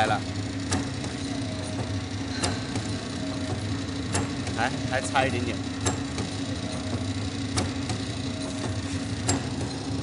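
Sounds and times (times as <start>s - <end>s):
machine motor hum: 0.0s - 10.0s
sharp mechanical clack: 0.6s - 4.7s, 5.8s - 10.0s.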